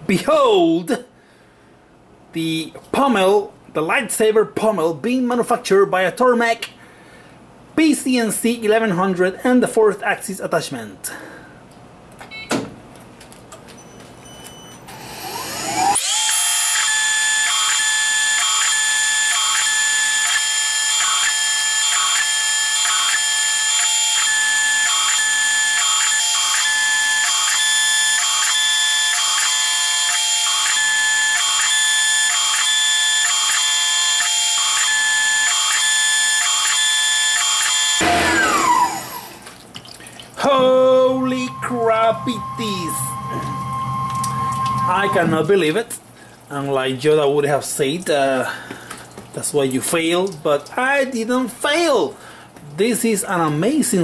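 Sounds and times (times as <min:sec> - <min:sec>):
milling machine spindle whine: 0:14.8 - 0:39.4, 0:40.6 - 0:45.6.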